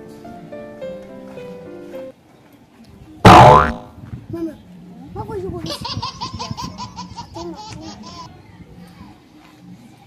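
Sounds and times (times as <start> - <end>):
comic boing sound effect: 3.3 - 3.9.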